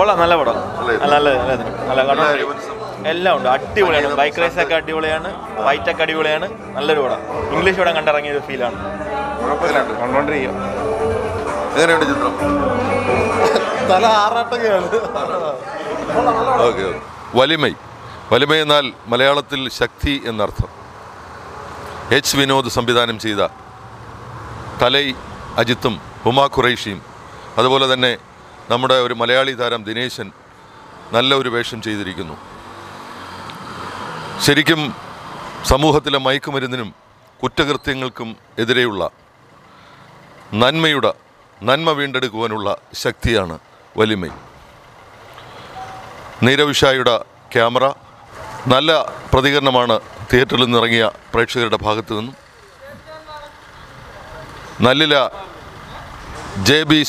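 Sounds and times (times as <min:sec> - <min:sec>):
faint outdoor background noise: 0:00.0 - 0:57.0
road traffic noise: 0:00.0 - 0:57.0.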